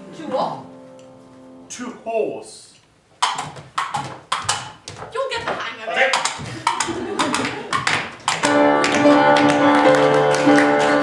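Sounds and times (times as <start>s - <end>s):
sharp uneven knocks and taps: 3.2s - 11.0s
piano music with sustained notes: 8.4s - 11.0s.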